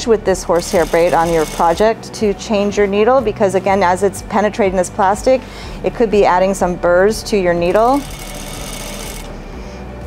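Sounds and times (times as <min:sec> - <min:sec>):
sewing machine running: 0:00.6 - 0:02.0, 0:07.7 - 0:09.4.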